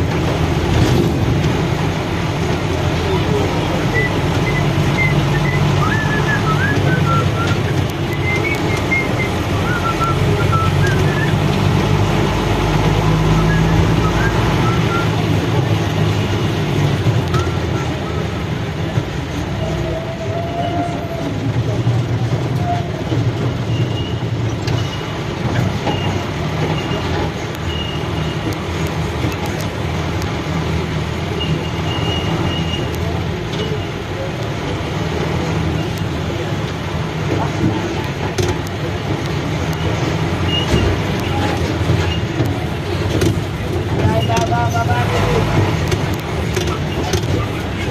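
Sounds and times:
vehicle engine and road noise: 0.0 - 47.9
voices: 1.4 - 47.9.

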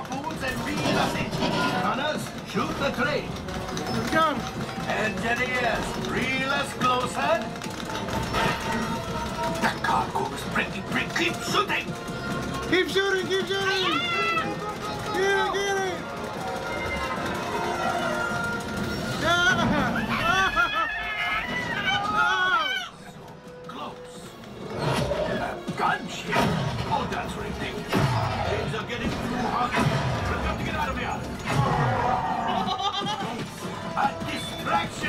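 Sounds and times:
music: 0.0 - 35.0
cannons firing: 24.8 - 32.6.

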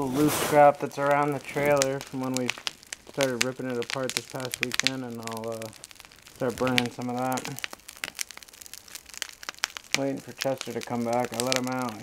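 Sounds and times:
bonfire crackling and popping: 0.0 - 12.0.

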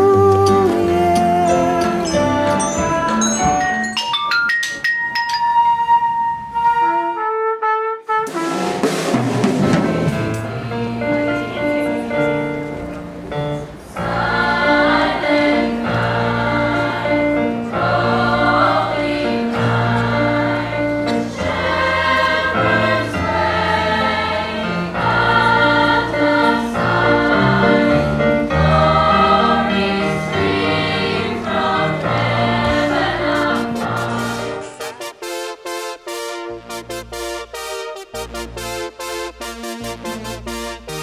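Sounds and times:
low instrumental accompaniment: 0.0 - 41.0
girls' choir singing: 14.0 - 34.8.

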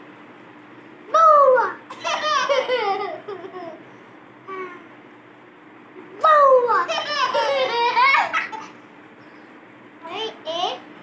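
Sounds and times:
young child giggling: 1.9 - 3.8, 6.9 - 8.8.

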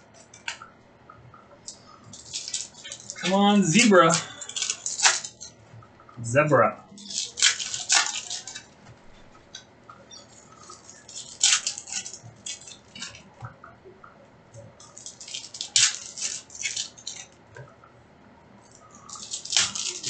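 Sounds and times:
cards rustling: 1.7 - 5.5, 6.9 - 9.0, 18.7 - 20.0
foil wrappers crinkling and tearing: 1.7 - 5.5, 6.9 - 8.8, 10.1 - 13.3, 14.8 - 17.4, 18.7 - 20.0.

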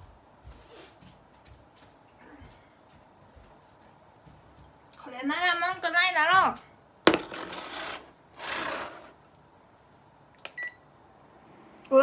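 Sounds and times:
induction hob beep: 10.5 - 10.8.

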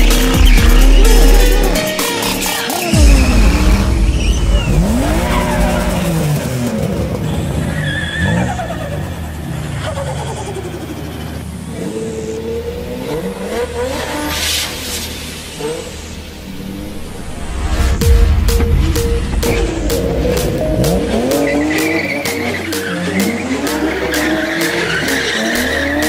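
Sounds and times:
tyre squeal: 0.0 - 6.5, 7.2 - 12.4, 21.1 - 26.0
car engine revving hard: 2.8 - 17.1.

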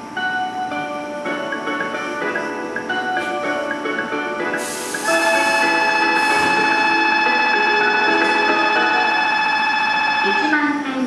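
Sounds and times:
loud steady ringing tone: 0.0 - 11.0.

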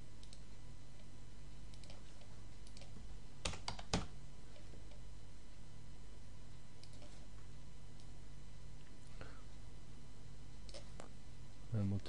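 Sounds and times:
low electrical hum: 0.0 - 12.0
computer mouse clicks: 0.2 - 0.4, 1.7 - 5.0, 6.8 - 7.2, 10.7 - 11.1.

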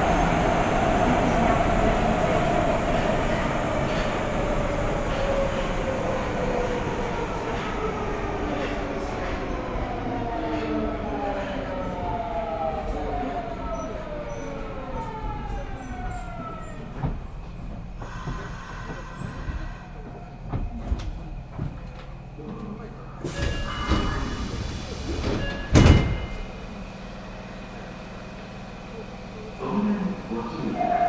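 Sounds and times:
low train hum: 0.0 - 31.0.

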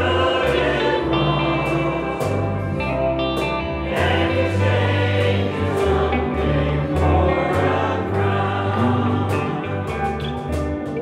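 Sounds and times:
group singing a hymn: 0.0 - 10.6
acoustic guitar: 0.0 - 11.0
sustained low bass notes: 0.0 - 11.0.

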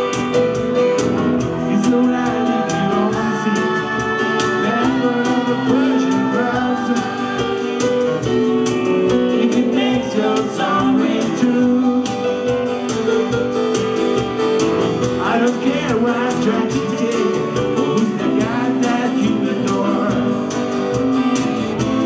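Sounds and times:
man singing: 0.0 - 12.8, 15.0 - 21.1
strummed electric guitar: 0.0 - 22.0.

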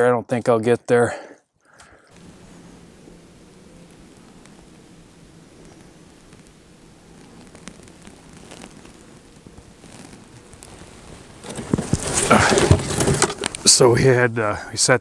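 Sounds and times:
outdoor background hiss: 0.0 - 15.0
gear rustling and knocking: 11.4 - 13.7.

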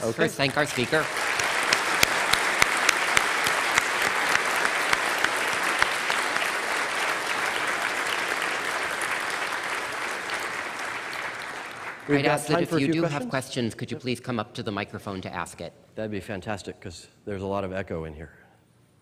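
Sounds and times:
audience applauding: 0.0 - 13.4.

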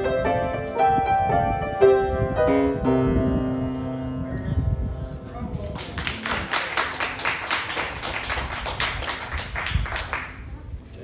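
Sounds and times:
audience clapping: 5.7 - 10.4.

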